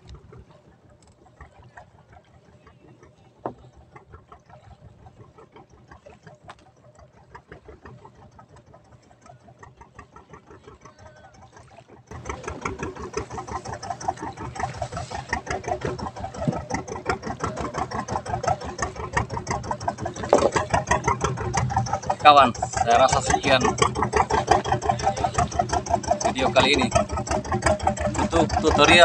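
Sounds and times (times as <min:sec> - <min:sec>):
boat engine chugging: 0:00.0 - 0:29.0.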